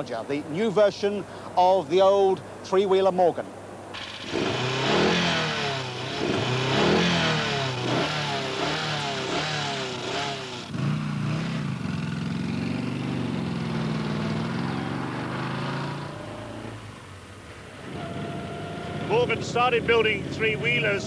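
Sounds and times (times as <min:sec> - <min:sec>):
engine revving hard: 0:04.0 - 0:16.9, 0:17.8 - 0:21.0.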